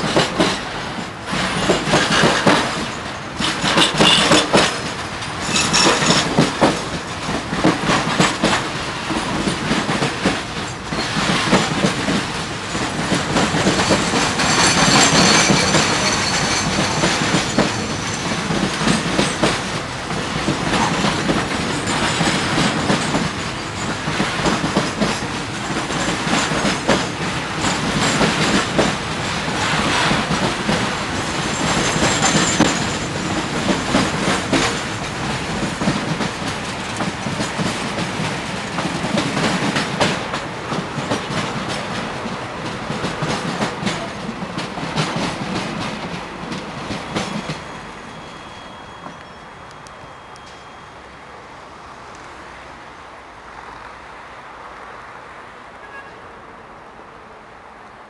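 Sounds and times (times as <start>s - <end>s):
wheels clicking over rail joints: 0.0s - 47.8s
steel wheels rumbling on rail: 0.0s - 56.2s.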